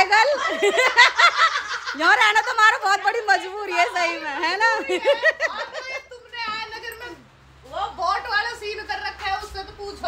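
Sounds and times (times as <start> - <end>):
women laughing loudly: 0.1 - 2.5, 4.6 - 6.1.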